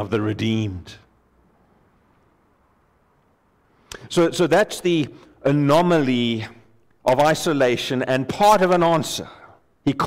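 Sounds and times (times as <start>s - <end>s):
man speaking: 0.0s - 1.1s, 3.9s - 10.0s.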